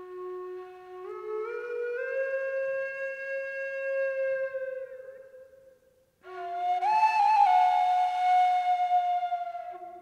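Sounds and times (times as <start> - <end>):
flute-like long note: 0.0 - 5.2, 6.2 - 10.0.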